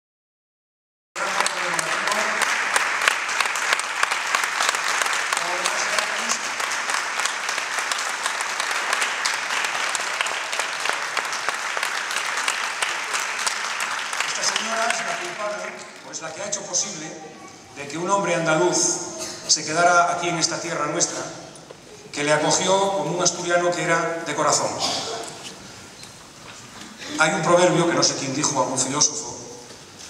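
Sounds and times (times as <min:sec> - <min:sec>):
audience applauding: 0:01.2 - 0:17.0.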